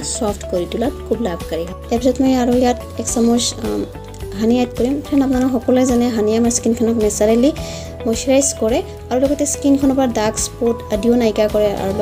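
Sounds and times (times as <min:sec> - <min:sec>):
background music: 0:00.0 - 0:12.0
woman narrating: 0:00.0 - 0:12.0.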